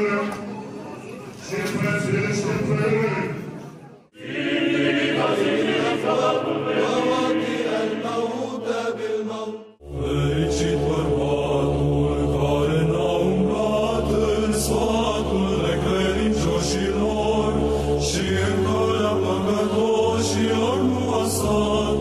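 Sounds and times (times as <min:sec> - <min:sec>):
church chant singing: 0:01.4 - 0:22.0.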